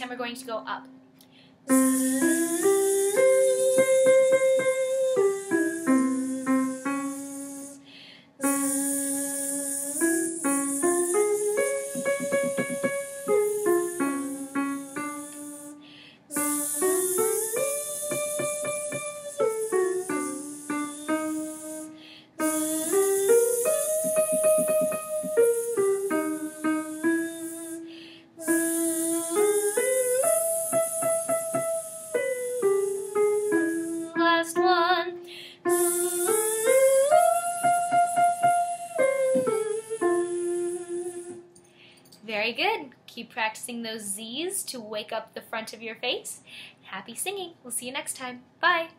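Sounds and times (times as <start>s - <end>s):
woman singing vocal warm-up: 1.7s - 7.8s, 8.4s - 41.5s.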